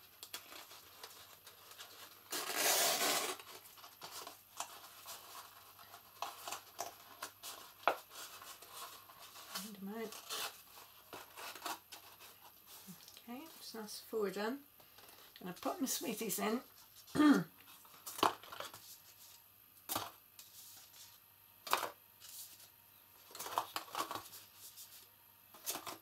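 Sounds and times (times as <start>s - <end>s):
card and ribbon rustling: 0.0s - 13.9s, 14.8s - 19.4s.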